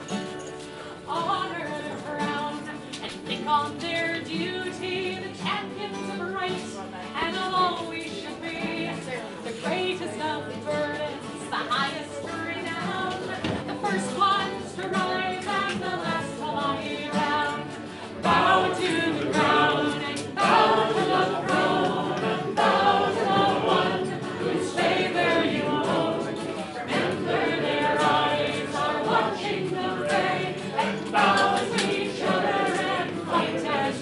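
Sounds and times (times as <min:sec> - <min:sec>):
group singing folk song: 0:00.0 - 0:34.0.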